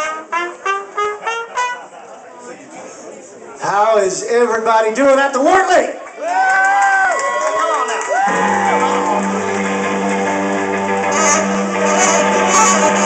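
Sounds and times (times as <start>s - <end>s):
blues band playing: 0.0s - 2.0s, 8.2s - 13.0s.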